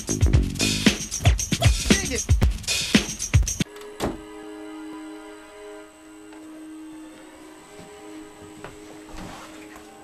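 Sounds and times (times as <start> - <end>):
eerie electronic drone: 3.6 - 10.0.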